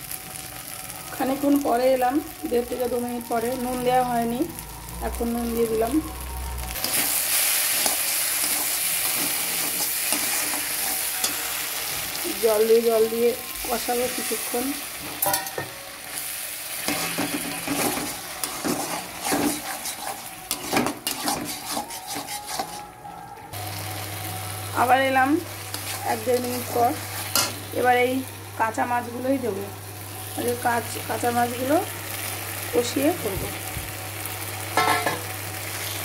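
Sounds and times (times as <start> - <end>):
paste sizzling in a pan: 6.2 - 22.8, 23.6 - 33.2, 34.0 - 36.0
metal spatula stirring: 6.8 - 11.6, 16.8 - 22.9, 25.7 - 27.6
spatula scraping metal pan: 16.8 - 22.9.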